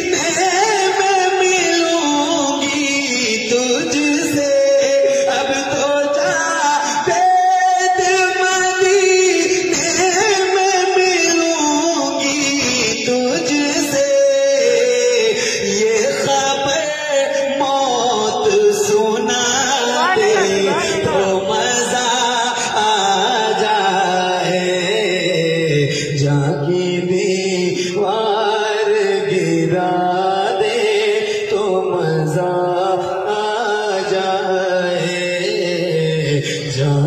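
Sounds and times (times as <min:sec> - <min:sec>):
man singing into microphone: 0:00.0 - 0:37.0.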